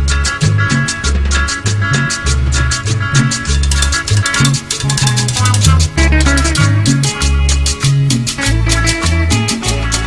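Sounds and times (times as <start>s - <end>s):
deep bass line: 0.0s - 10.0s
fast shaker rhythm: 0.0s - 10.0s.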